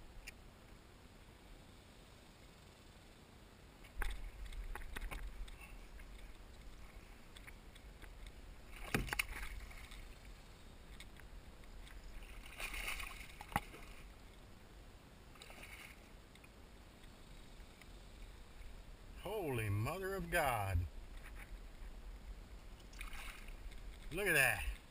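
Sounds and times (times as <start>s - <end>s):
water splashing against kayak hull: 3.9s - 10.2s, 11.7s - 14.1s, 15.3s - 16.1s, 22.8s - 24.9s.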